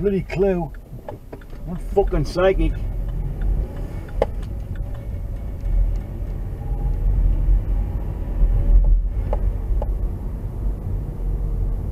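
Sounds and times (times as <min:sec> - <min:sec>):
car engine and road rumble: 0:00.0 - 0:11.9.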